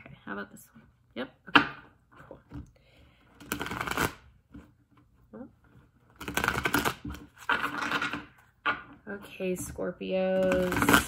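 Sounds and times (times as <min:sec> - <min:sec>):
cards being shuffled: 0:03.4 - 0:04.7, 0:06.0 - 0:08.5.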